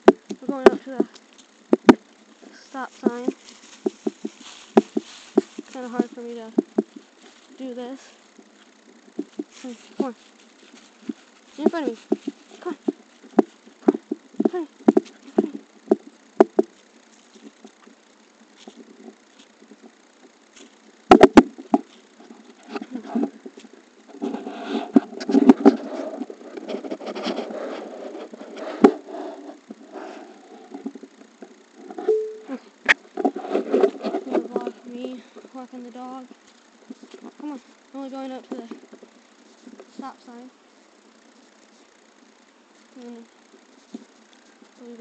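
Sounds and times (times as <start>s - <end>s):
rubbing against microphone: 0.0s - 17.8s, 18.5s - 40.4s
phone microphone handling noise: 3.0s - 7.2s, 9.1s - 17.8s, 21.0s - 29.2s.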